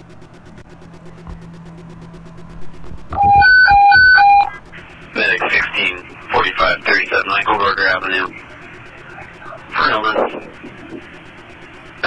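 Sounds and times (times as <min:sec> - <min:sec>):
low steady hum: 0:00.0 - 0:12.0
two-tone radio alert tone: 0:03.2 - 0:04.6
dispatch call over radio: 0:05.2 - 0:10.8.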